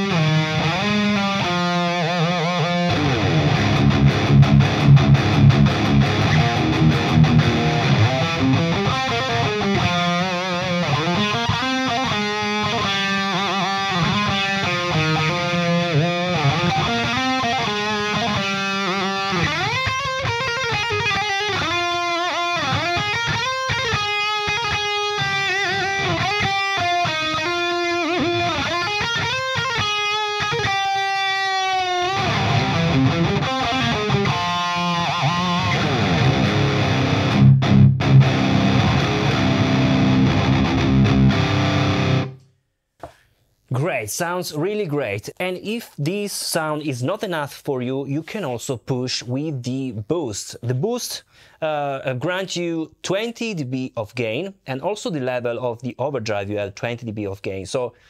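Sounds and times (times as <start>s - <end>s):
distorted electric guitar: 0.0s - 42.5s.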